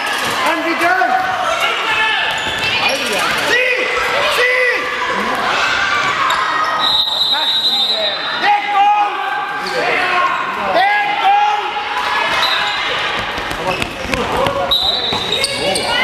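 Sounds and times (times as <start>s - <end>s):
shoes squeaking on floor: 1.3s - 3.4s, 12.3s - 16.0s
ball bouncing: 13.2s - 15.4s.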